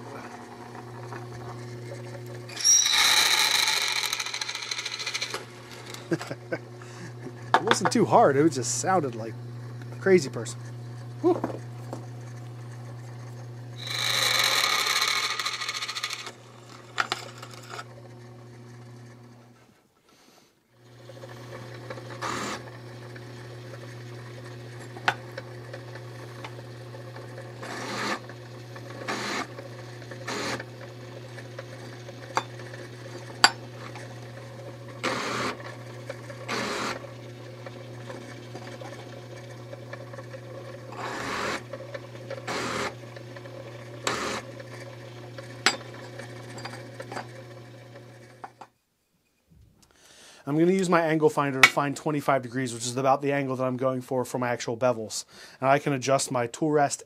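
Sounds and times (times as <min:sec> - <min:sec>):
drill press motor hum: 0:00.0 - 0:19.6, 0:20.8 - 0:48.6
harsh drilling through metal: 0:02.5 - 0:06.4, 0:13.8 - 0:17.5, 0:36.4 - 0:37.0
drill bit clicks and knocks: 0:02.9 - 0:06.1.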